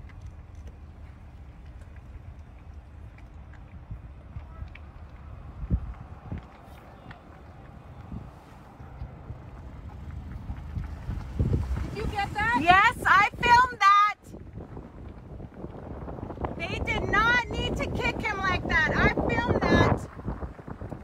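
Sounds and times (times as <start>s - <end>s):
low steady rumble: 0.0s - 21.0s.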